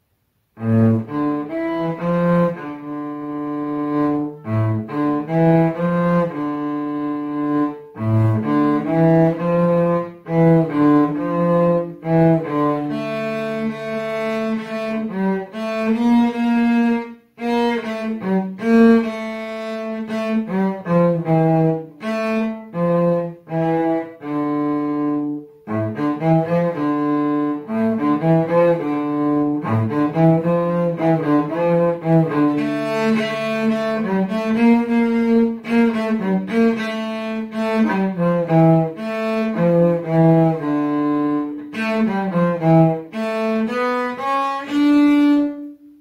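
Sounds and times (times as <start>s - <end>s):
bowed cello melody: 0.4s - 46.0s.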